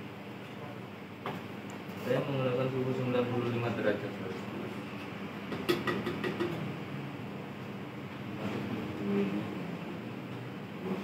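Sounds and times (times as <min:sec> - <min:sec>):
room hum: 0:00.0 - 0:11.0.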